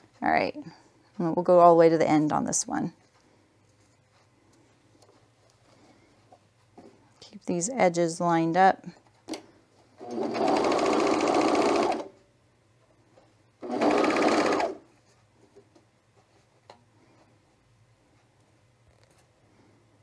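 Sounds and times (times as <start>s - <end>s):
serger sewing machine running: 10.0s - 12.1s, 13.6s - 14.8s.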